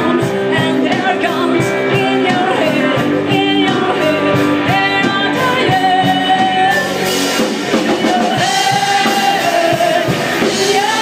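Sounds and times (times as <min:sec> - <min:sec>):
rock band playing: 0:00.0 - 0:11.0
woman singing lead: 0:00.0 - 0:11.0.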